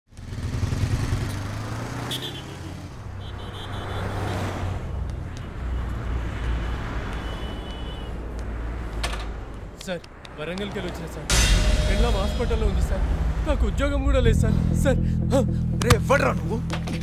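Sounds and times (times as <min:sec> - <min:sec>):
motorcycle engines running: 0:00.1 - 0:03.3
road traffic noise: 0:00.1 - 0:17.0
vehicle passing: 0:00.2 - 0:11.3.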